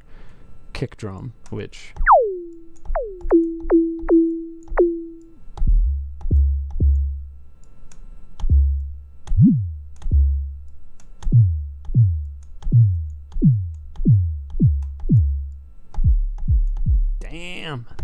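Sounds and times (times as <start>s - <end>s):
synthesized kick drum hits: 5.7s - 7.2s, 9.4s - 10.5s, 11.3s - 17.2s.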